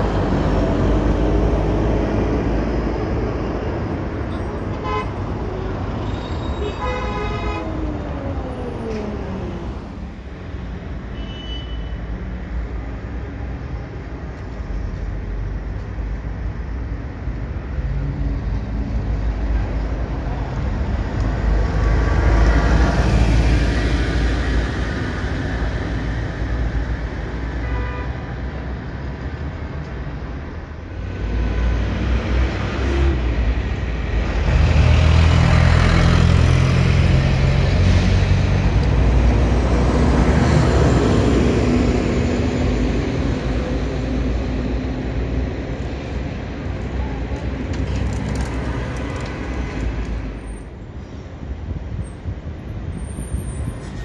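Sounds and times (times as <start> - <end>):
buses driving past: 0.0 - 54.0.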